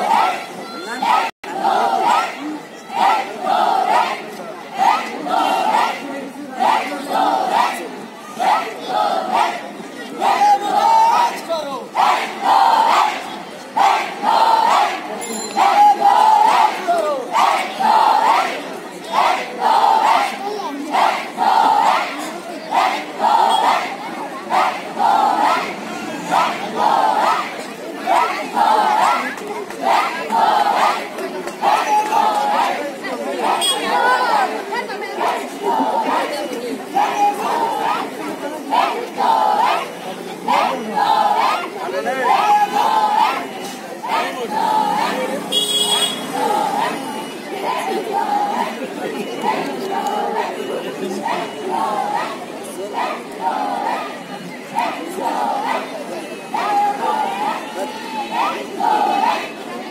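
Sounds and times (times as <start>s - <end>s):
group shouting in unison: 10.2s - 13.2s, 24.5s - 27.5s.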